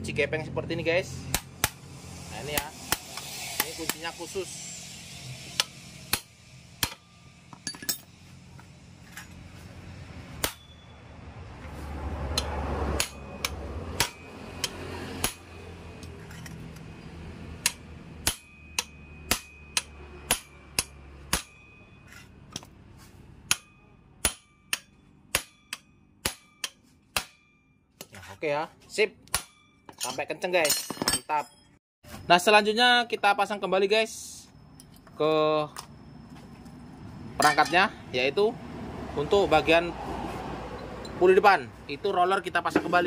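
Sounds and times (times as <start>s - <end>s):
low rumble: 0.0s - 14.0s
hammer striking metal wrench: 1.2s - 8.2s, 10.4s - 10.9s, 12.3s - 22.8s, 23.4s - 28.1s, 29.3s - 31.8s, 37.4s - 38.0s.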